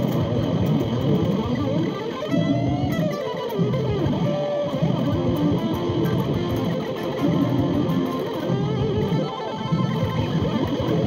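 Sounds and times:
electric guitar lead with bends: 0.0s - 11.0s.

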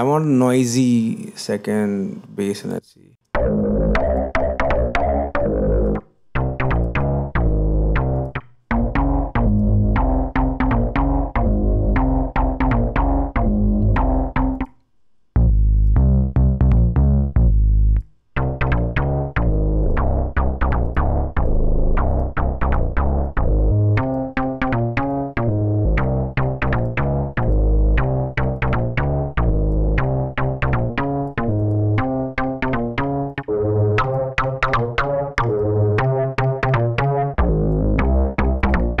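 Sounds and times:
synth bass line: 3.4s - 14.7s, 15.4s - 39.0s.

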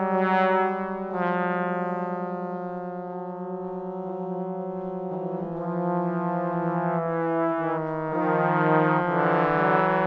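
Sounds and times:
trombones sustaining a chord: 3.6s - 10.0s.

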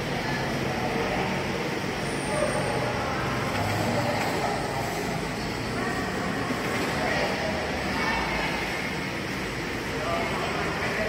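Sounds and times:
steady hum of noise: 0.0s - 11.0s.

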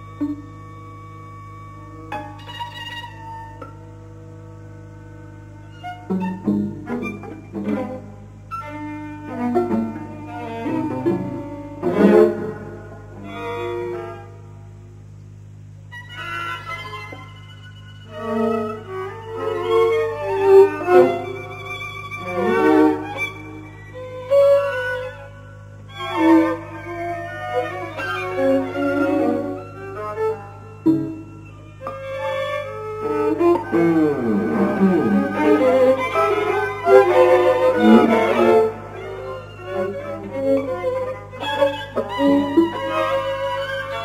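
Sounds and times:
string quartet playing: 0.0s - 15.2s, 15.8s - 44.0s.

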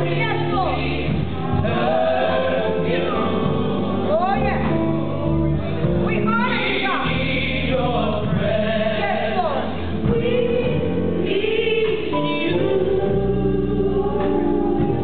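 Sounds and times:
gospel group singing in harmony: 0.0s - 15.0s
keyboard accompaniment: 0.0s - 15.0s.

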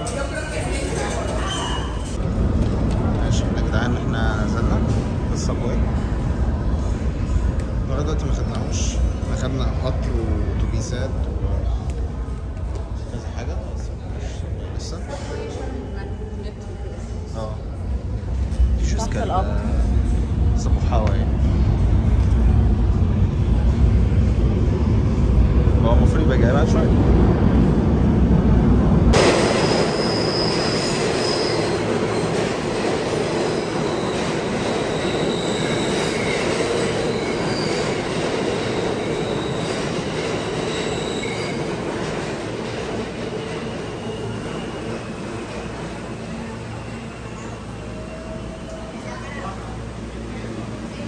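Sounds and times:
metal wheels squealing on rails: 0.0s - 2.2s, 29.4s - 49.1s
subway train rumble: 0.0s - 51.0s.

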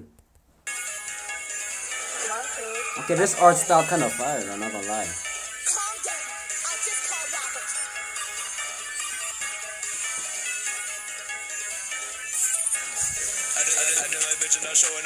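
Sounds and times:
melodic rap over a beat: 1.7s - 15.0s.

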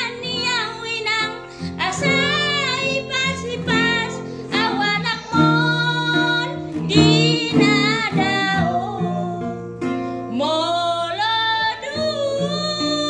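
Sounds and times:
picked acoustic guitar: 0.0s - 13.0s
woman singing with vibrato: 0.0s - 13.0s.

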